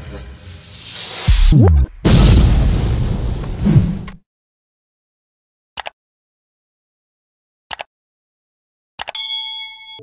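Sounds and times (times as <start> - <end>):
bright bell-like ding: 9.2 - 10.0.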